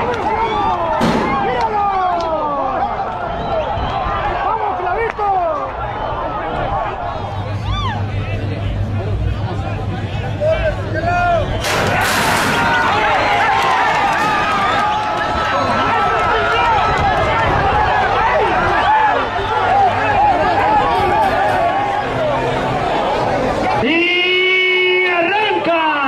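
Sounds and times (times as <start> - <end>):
crowd shouting and cheering: 0.0 - 26.0
starting gate banging open: 11.6 - 13.0.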